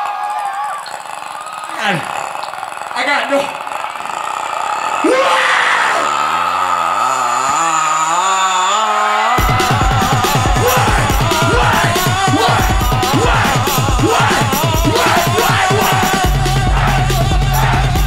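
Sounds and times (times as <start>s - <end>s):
crowd yelling: 0.0s - 18.0s
hip-hop backing track: 9.4s - 18.0s
loud bass drums: 9.4s - 18.0s.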